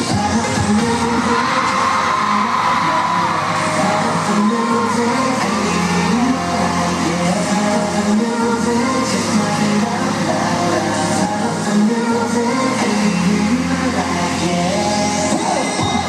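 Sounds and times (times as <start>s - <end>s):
electronic backing track: 0.0s - 16.0s
man singing: 0.0s - 16.0s.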